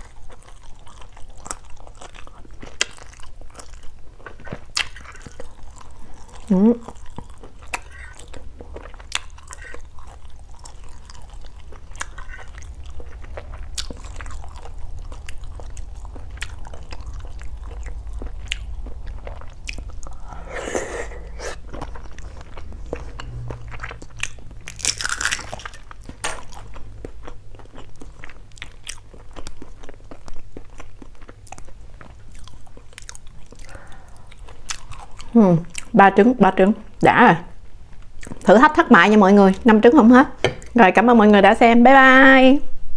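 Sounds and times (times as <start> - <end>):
wet chewing and smacking: 0.0 - 36.0, 37.8 - 38.6
noisy mouth bursts: 20.2 - 21.7.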